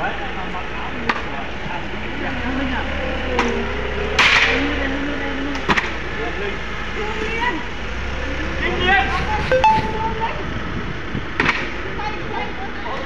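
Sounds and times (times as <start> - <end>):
workers' voices: 0.0 - 10.2.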